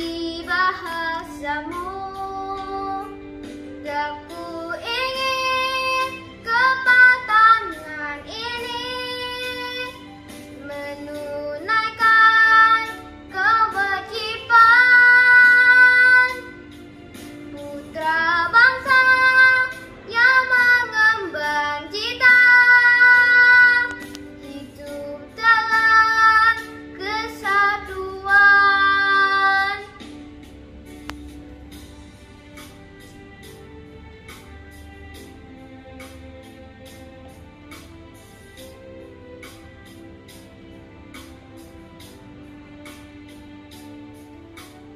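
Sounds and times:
girl singing: 0.0 - 16.7, 17.5 - 30.2
quiet musical backing: 0.0 - 44.9.

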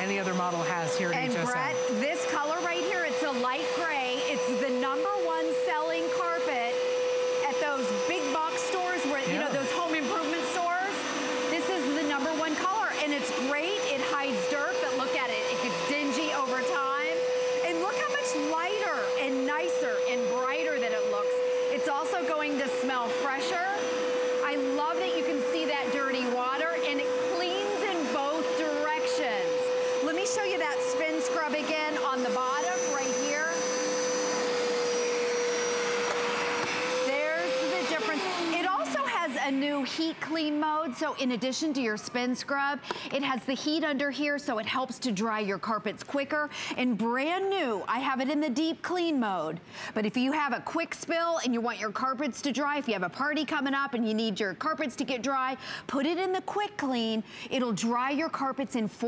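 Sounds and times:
carpet cleaner motor whine: 0.0 - 41.2.

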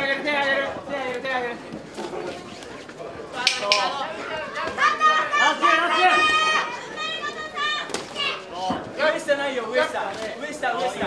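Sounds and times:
people yelling: 3.7 - 8.5.

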